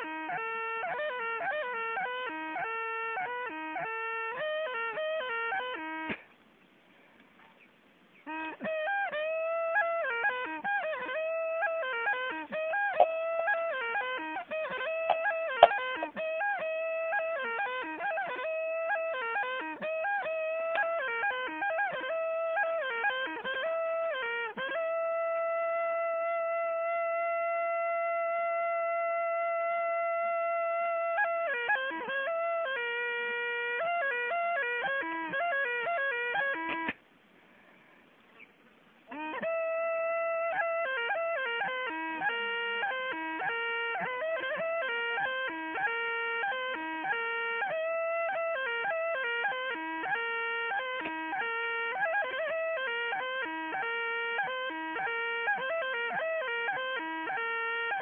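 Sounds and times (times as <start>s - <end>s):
flute melody: 0.0s - 6.3s, 8.2s - 37.0s, 38.4s - 58.0s.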